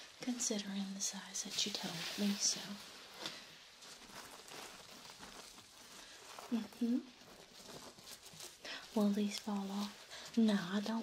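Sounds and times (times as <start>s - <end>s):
fabric rustling under fingertips: 0.0s - 11.0s.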